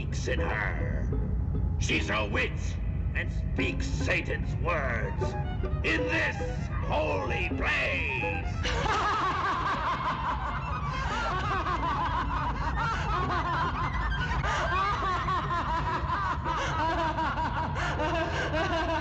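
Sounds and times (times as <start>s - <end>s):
low steady drone: 0.0s - 19.0s
people laughing and snickering: 8.6s - 19.0s.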